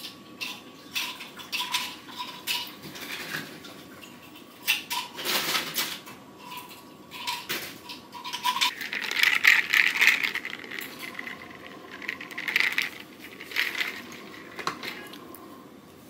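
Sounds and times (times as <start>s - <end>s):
ice cubes clinking in a bottle: 8.3s - 15.2s.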